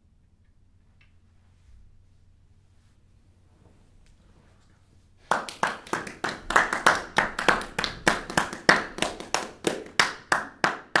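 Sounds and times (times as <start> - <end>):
audience clapping: 5.2 - 11.0.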